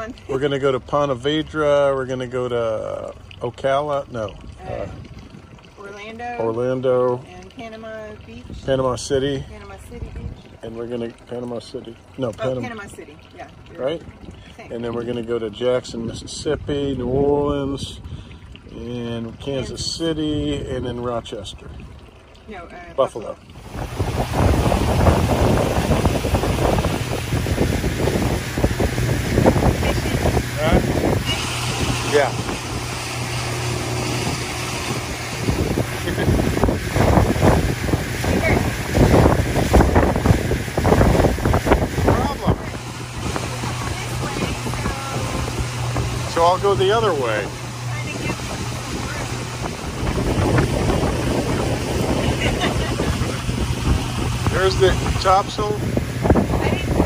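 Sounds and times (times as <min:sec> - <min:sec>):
boat motor droning: 0:00.0 - 0:57.0
water rushing past: 0:00.0 - 0:57.0
wind buffeting microphone: 0:04.0 - 0:06.6, 0:07.6 - 0:11.2, 0:23.4 - 0:57.0.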